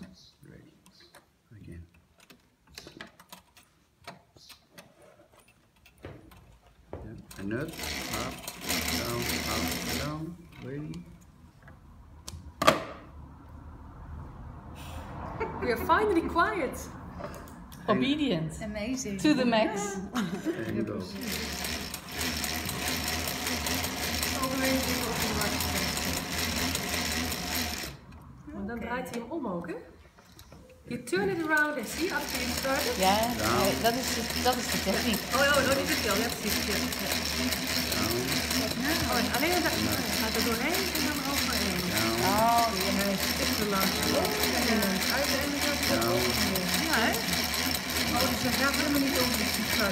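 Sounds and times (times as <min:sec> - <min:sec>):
sewing machine clicking: 0:07.3 - 0:10.7, 0:20.7 - 0:28.2, 0:31.4 - 0:49.9.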